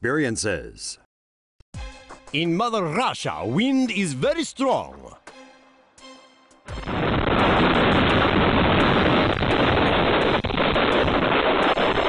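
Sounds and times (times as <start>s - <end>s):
strong wind gusting: 6.8s - 12.0s.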